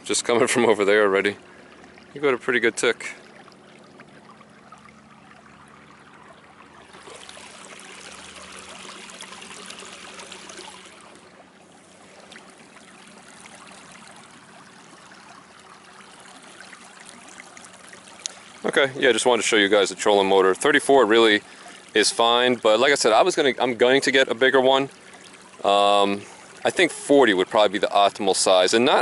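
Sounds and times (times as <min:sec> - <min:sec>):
faint low motor hum: 0:00.0 - 0:29.0
water rushing along canoe hull: 0:00.0 - 0:29.0.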